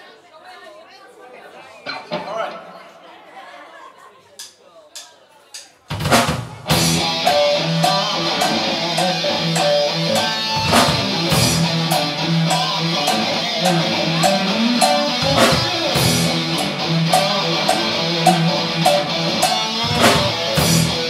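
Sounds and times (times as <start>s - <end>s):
pounding drums: 5.9s - 21.0s
bass guitar: 6.0s - 21.0s
electric guitar riff: 6.0s - 21.0s.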